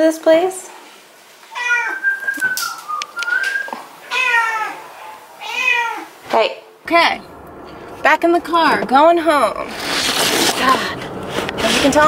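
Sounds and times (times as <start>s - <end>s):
cat meowing: 1.5s - 2.1s, 4.1s - 6.2s.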